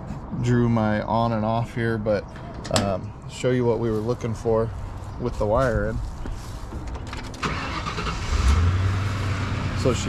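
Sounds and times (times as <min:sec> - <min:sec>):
car engine starter cranking: 0:07.1 - 0:08.8.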